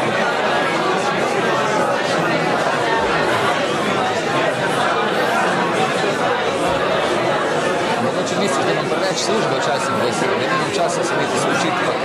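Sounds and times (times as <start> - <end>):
babble of many conversations: 0.0 - 12.0.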